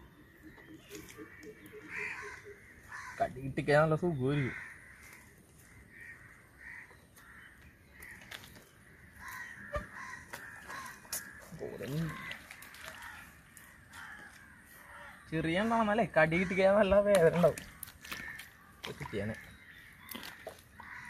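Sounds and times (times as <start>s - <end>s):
crows cawing: 0.5s - 21.0s.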